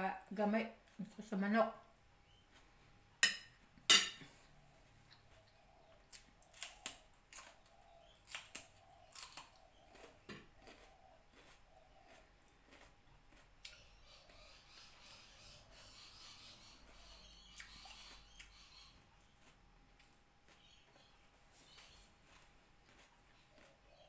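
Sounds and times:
person chewing: 2.4s - 2.9s, 5.0s - 14.7s, 16.4s - 24.0s
metal fork clinking on plate: 3.2s - 4.3s.

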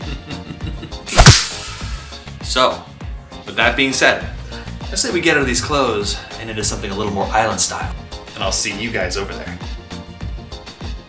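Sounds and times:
background music: 0.0s - 11.0s
whip-crack sound effect: 1.1s - 2.1s.

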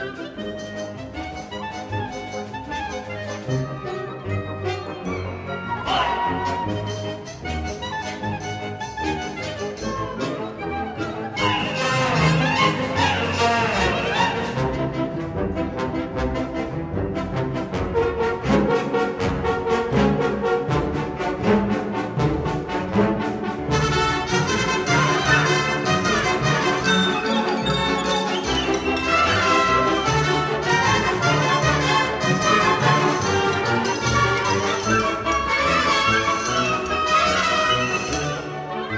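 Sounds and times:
wind ensemble playing chords: 0.0s - 38.9s.

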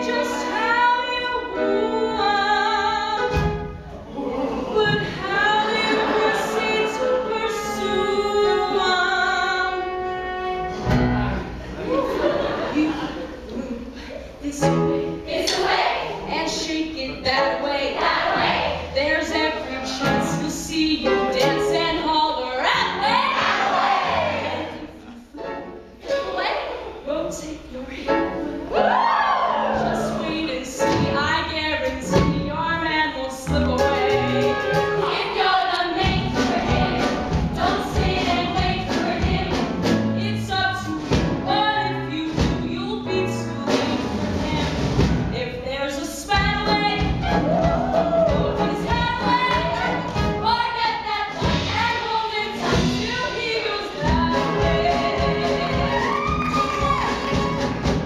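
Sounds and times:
women singing musical theatre: 0.0s - 11.1s, 12.0s - 25.3s, 26.0s - 58.0s
instrumental accompaniment: 4.9s - 11.7s, 29.7s - 45.6s, 46.3s - 58.0s.

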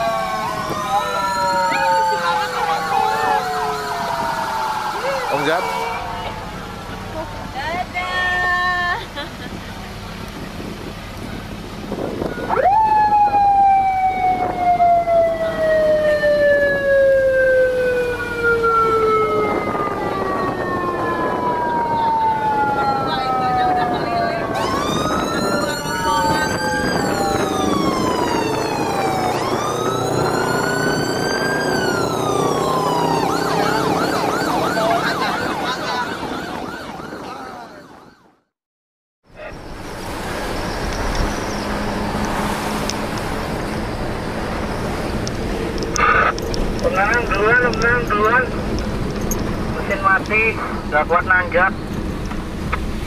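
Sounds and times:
vehicle siren wailing: 0.0s - 8.3s, 12.0s - 38.6s, 39.4s - 51.9s.

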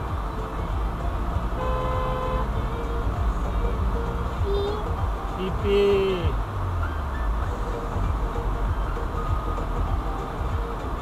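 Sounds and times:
road and engine rumble: 0.0s - 11.0s
vehicle horn: 1.6s - 2.6s.

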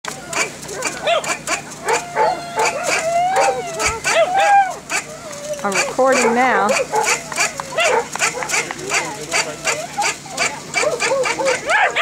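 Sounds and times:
dog yelping and whining: 0.3s - 12.0s.

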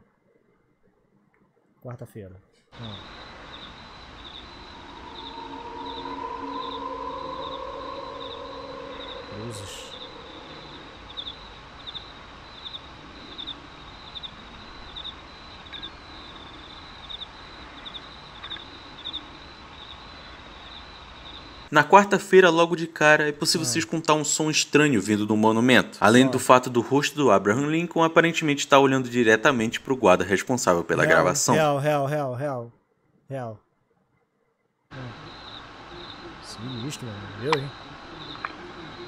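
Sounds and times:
background hiss: 1.8s - 32.7s, 34.9s - 39.0s
insects chirping: 2.8s - 32.2s, 34.9s - 39.0s
low droning tone: 2.9s - 12.3s.

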